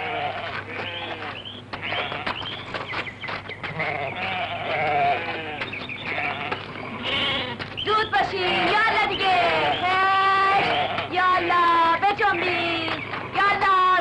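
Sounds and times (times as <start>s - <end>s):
sheep bleating: 0.0s - 2.6s, 3.6s - 14.0s
low steady hum: 0.0s - 14.0s.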